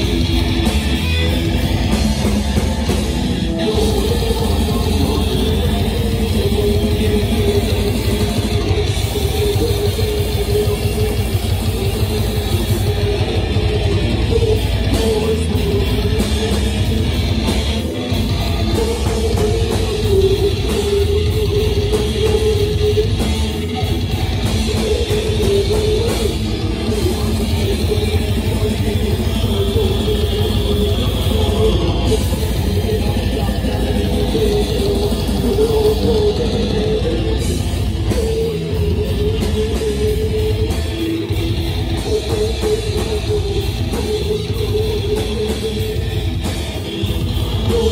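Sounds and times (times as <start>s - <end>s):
death metal band playing live: 0.0s - 47.9s.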